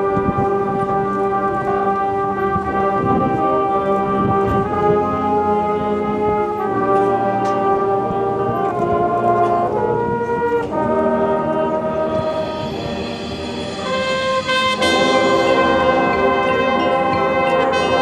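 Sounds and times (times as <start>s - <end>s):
marching band brass chords: 0.0s - 18.0s.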